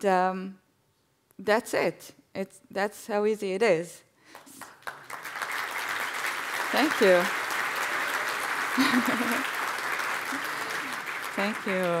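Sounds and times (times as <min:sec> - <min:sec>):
audience applauding: 0:04.4 - 0:12.0.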